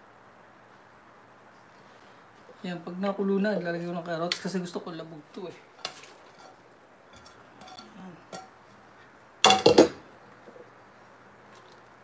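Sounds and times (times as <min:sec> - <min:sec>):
wooden spoon scraping a plate: 0:05.8 - 0:08.0
dishes and cookware clattering: 0:05.8 - 0:08.6, 0:09.4 - 0:10.0.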